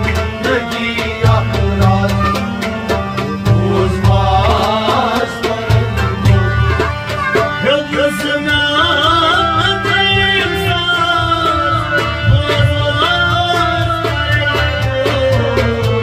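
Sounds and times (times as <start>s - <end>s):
harmonium chords: 0.0s - 16.0s
man singing: 0.0s - 16.0s
percussion beat: 0.0s - 16.0s.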